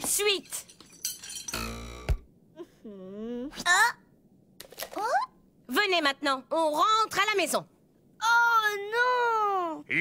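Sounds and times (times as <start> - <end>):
metallic clinking rattle: 0.0 - 1.7.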